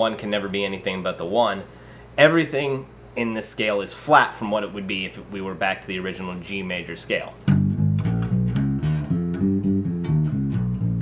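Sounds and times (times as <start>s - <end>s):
bass guitar plucking scale notes: 7.4s - 11.0s.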